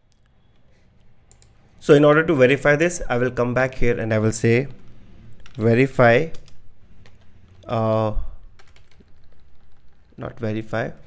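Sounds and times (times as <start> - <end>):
computer keyboard typing: 0.1 - 1.6, 4.6 - 11.0.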